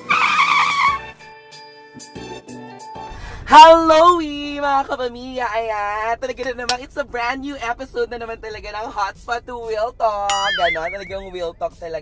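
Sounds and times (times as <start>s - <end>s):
light intro jingle: 10.3s - 11.1s
tyre screech sound effect: 10.4s - 11.0s.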